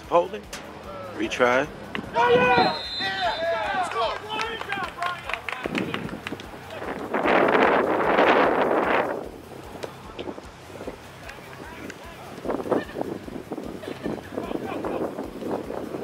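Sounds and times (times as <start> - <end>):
outdoor background noise: 0.0 - 16.0
men shouting: 0.8 - 7.0, 13.8 - 15.2
rush of noise: 1.0 - 16.0.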